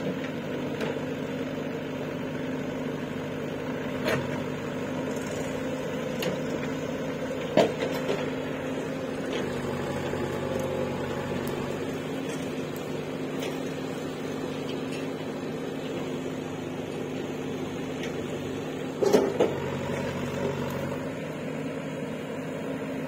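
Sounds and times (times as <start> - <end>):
diesel engine running at low revs: 0.0 - 23.0.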